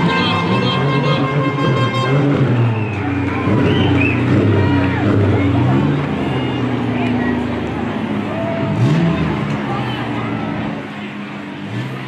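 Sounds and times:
car engine revving: 0:00.0 - 0:12.0
car engines running: 0:00.0 - 0:12.0.

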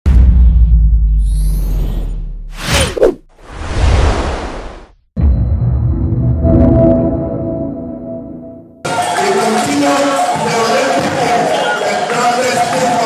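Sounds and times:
deep bass hit: 0:00.0 - 0:02.5
swishing whooshes: 0:02.5 - 0:04.9.

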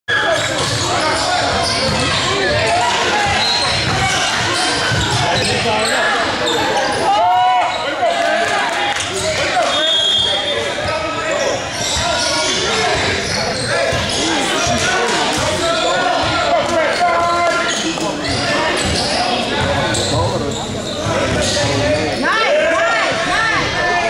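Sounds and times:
players and spectators calling out: 0:00.1 - 0:24.0.

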